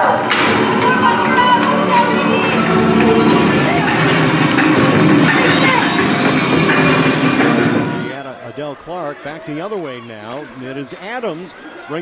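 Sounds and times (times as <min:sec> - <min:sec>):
loud music: 0:00.0 - 0:08.1
voices: 0:00.0 - 0:12.0
sports commentator speaking: 0:08.1 - 0:12.0.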